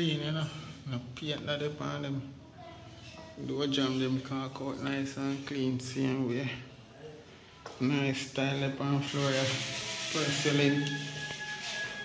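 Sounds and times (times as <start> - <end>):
rough rubbing hiss: 9.0 - 12.0.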